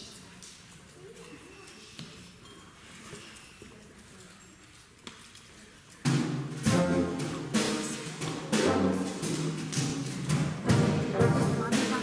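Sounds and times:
sharp drum hits: 6.2 - 12.0
wind band playing chords: 6.4 - 12.0.

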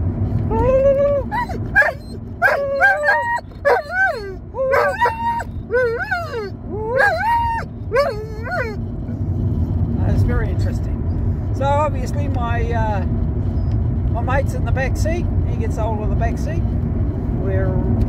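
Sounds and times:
car road rumble: 0.0 - 18.0
dog howling: 0.5 - 8.8.

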